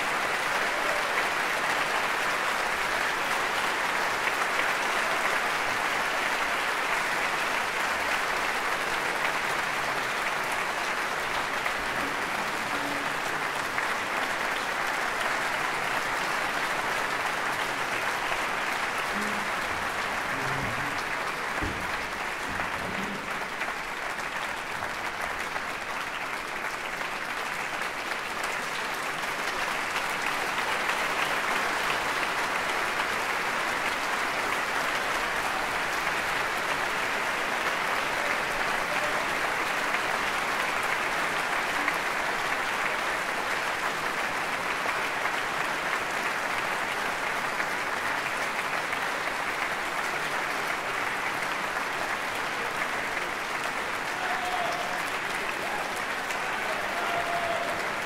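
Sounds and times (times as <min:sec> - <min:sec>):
audience applause: 0:00.0 - 0:58.0.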